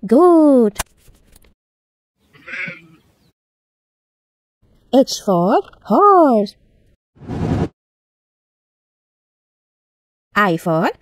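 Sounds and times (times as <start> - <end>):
goat bleating: 2.3 - 3.1.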